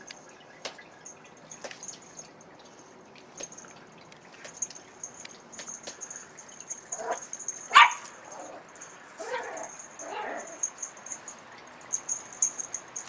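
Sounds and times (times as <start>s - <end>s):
small dog barking: 6.9s - 8.6s, 9.2s - 10.7s.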